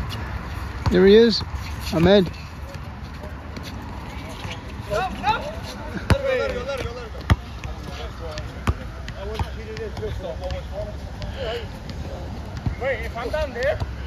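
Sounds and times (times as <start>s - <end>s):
basketball bouncing on asphalt: 0.1s - 14.0s.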